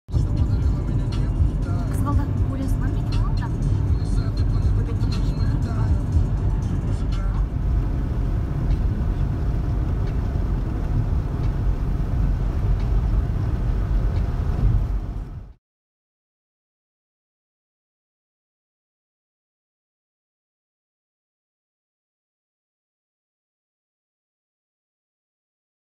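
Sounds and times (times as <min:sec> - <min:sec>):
car road and engine rumble: 0:00.1 - 0:15.6.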